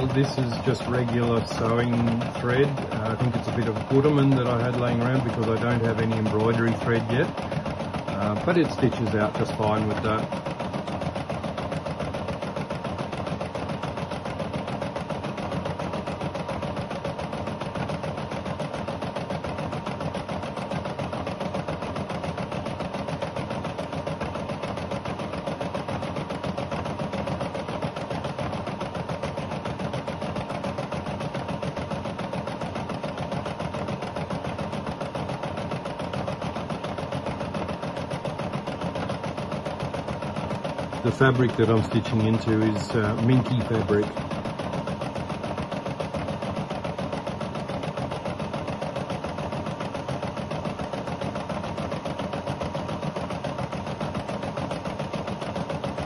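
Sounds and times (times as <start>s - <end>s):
embroidery machine needle strokes: 0.0s - 56.0s
motor hum: 0.0s - 56.0s.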